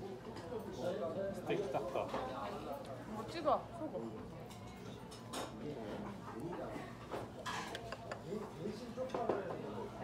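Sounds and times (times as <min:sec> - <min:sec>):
chopsticks clicking against plates: 0:07.6 - 0:08.2.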